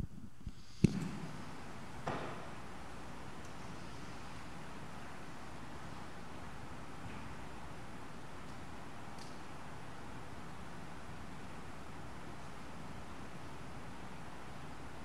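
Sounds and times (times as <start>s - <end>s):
steady faint hiss: 0.0s - 15.0s.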